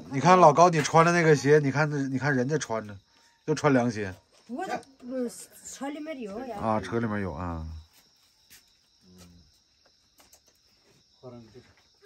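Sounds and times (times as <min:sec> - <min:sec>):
crickets chirping faintly: 0:00.0 - 0:12.0.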